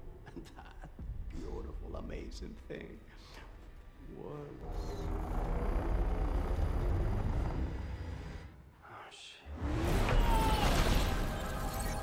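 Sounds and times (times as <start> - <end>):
deep low machine rumble: 4.6 - 8.6.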